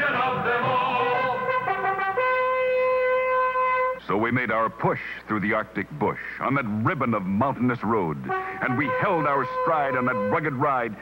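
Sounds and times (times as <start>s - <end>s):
horn-like wind instrument note: 0.0s - 4.1s, 8.2s - 11.0s.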